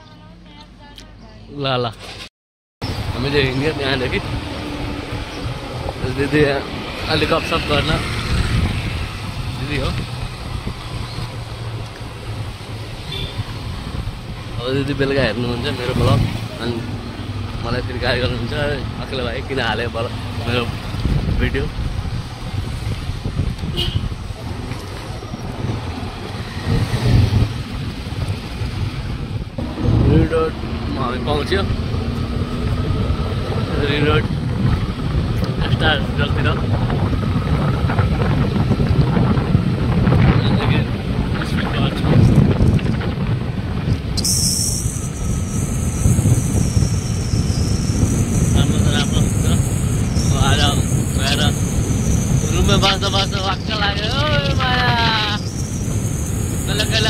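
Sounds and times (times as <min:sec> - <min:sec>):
motorcycle engine rumble: 0:02.8 - 0:57.0
wind buffeting microphone: 0:02.9 - 0:57.0
voice: 0:17.6 - 0:20.7, 0:29.8 - 0:31.7, 0:35.5 - 0:36.7, 0:40.3 - 0:42.3, 0:48.5 - 0:49.6, 0:50.2 - 0:51.6, 0:52.5 - 0:55.4, 0:56.7 - 0:57.0.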